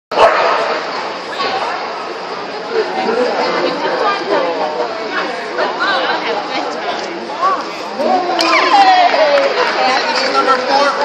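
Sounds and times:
crowd chattering: 0:00.1 - 0:11.0.

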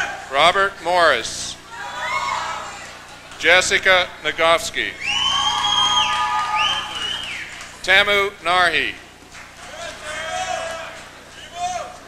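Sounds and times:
audience member whooping: 0:05.0 - 0:07.6.

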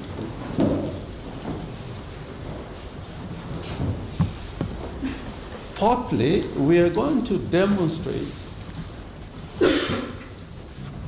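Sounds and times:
crowded room rumble: 0:00.0 - 0:11.0.

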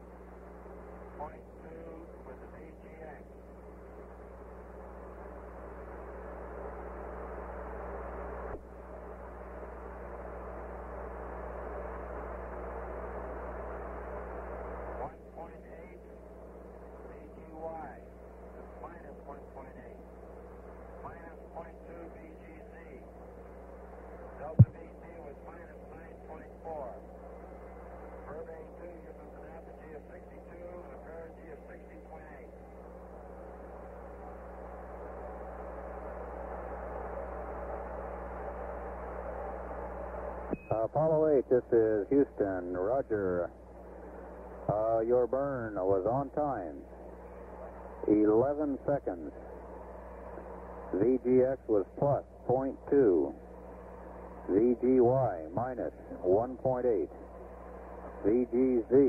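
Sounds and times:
low hum: 0:00.0 - 0:59.0
radio hiss: 0:00.0 - 0:59.0
faint radio voice: 0:01.1 - 0:03.3, 0:15.0 - 0:16.1, 0:17.0 - 0:20.1, 0:20.9 - 0:23.2, 0:24.4 - 0:27.1, 0:28.2 - 0:32.6, 0:40.7 - 0:43.5, 0:44.7 - 0:46.9, 0:47.5 - 0:49.5, 0:50.9 - 0:53.4, 0:54.5 - 0:57.3, 0:58.0 - 0:59.0.

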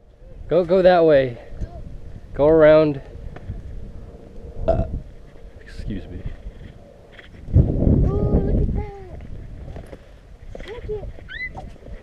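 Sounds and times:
person burping: 0:04.7 - 0:05.0.

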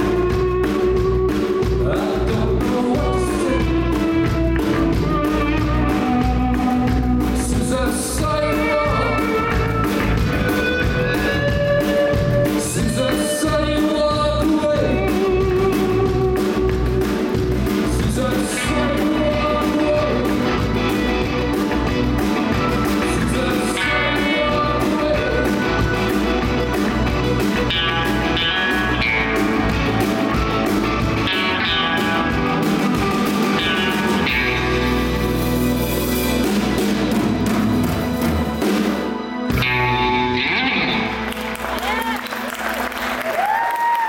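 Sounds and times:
rock band playing: 0:00.0 - 0:44.0.

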